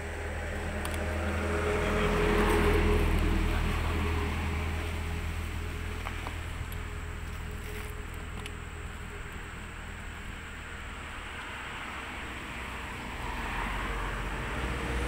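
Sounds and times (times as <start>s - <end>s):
vehicle passing by: 0.0s - 15.0s.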